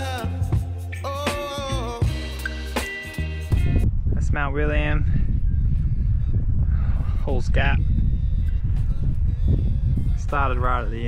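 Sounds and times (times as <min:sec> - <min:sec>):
wind buffeting microphone: 0:03.5 - 0:11.0.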